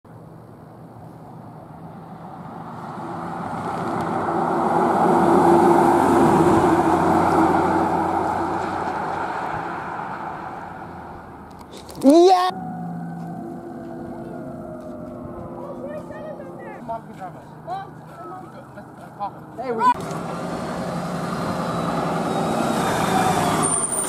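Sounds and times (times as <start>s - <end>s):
pickup truck driving past: 1.2s - 11.5s, 12.5s - 24.0s.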